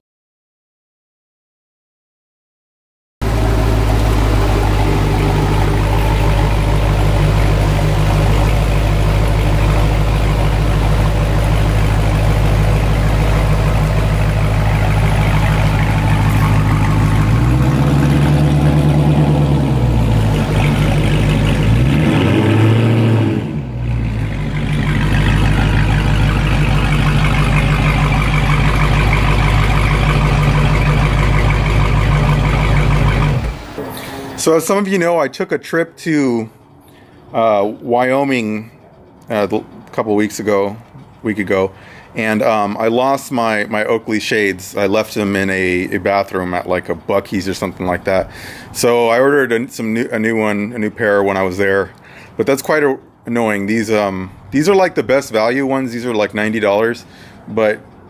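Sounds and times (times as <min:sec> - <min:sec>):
car engine deep exhaust: 0:03.2 - 0:34.7.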